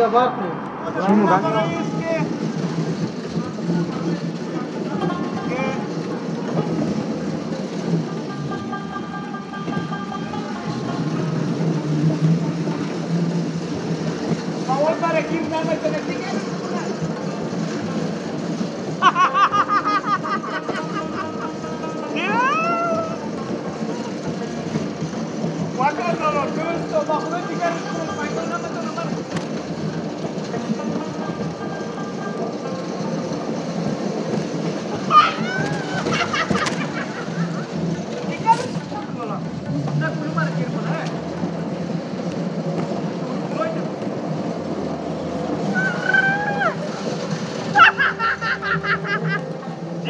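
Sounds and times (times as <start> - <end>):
bumper cars hum and rumble: 0.0 - 50.0
steady background noise: 0.0 - 50.0
voices: 0.0 - 50.0
person whooping and yelping: 22.2 - 23.2, 35.1 - 36.4, 45.7 - 46.9.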